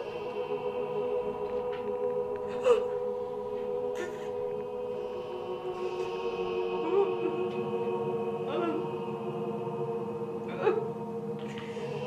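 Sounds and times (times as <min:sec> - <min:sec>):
choir-like sustained chord: 0:00.0 - 0:12.0.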